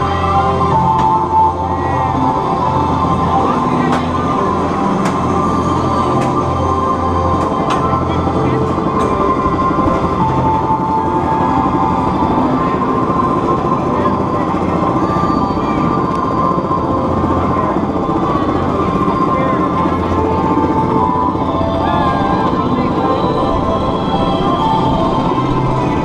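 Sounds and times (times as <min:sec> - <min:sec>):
continuous whine: 0:00.0 - 0:26.0.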